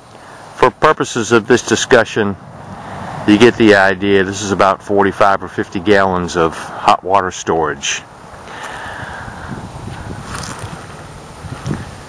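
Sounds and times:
wind rumbling on microphone: 2.2 - 4.6, 8.0 - 12.0
faint rustles: 8.3 - 12.0.

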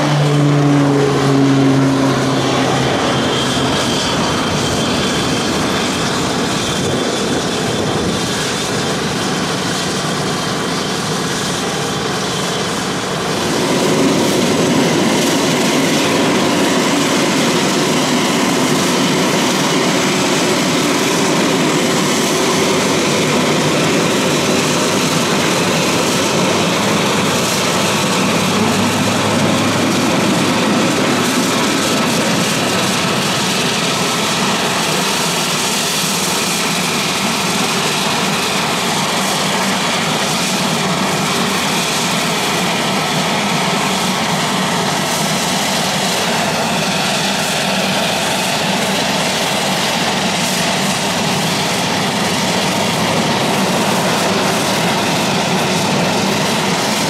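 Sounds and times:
turboprop engine running: 0.0 - 57.0.

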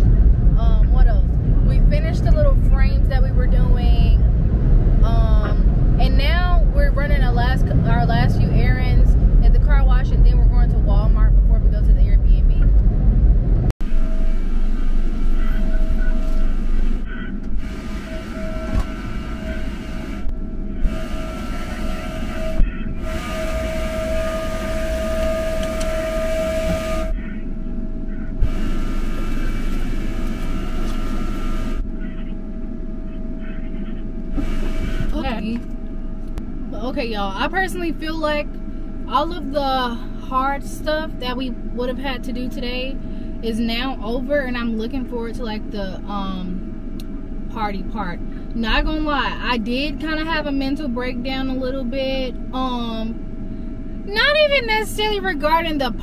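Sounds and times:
car wash machinery rumbling: 0.0 - 56.0
machine drone with high whine: 0.0 - 56.0
woman speaking: 0.6 - 4.2, 5.0 - 12.7, 35.1 - 35.6, 36.7 - 38.5, 39.1 - 46.6, 47.5 - 53.2, 54.1 - 56.0.

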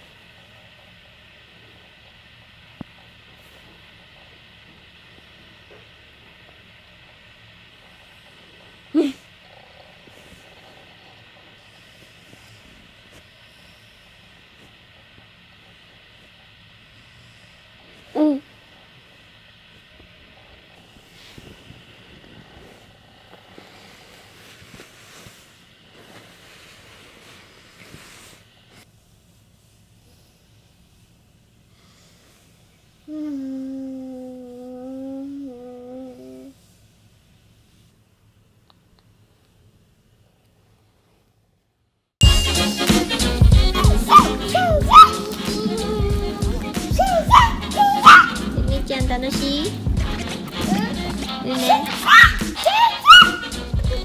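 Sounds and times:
faint steady hiss: 0.0 - 54.0
toddler grunting: 9.0 - 9.3, 33.1 - 36.5, 44.1 - 45.9, 46.9 - 48.7, 50.6 - 53.5
person humming a long note: 33.1 - 36.5.

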